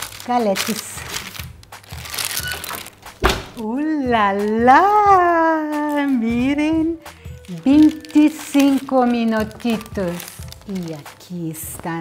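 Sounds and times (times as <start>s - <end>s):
baking parchment crinkling: 0.0s - 12.0s
soft background music with beat: 0.0s - 12.0s.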